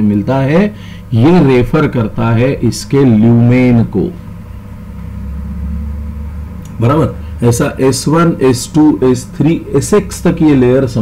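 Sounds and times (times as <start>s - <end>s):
faint steady hum: 0.0s - 11.0s
low background rumble: 0.0s - 11.0s.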